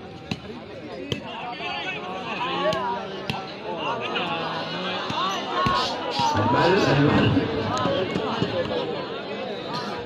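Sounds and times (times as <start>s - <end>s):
spectators shouting: 1.1s - 10.0s.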